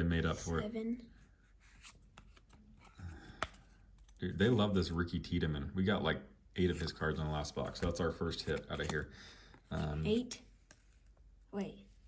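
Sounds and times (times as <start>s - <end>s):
trading cards flipped by hand: 1.7s - 4.2s, 7.6s - 11.3s.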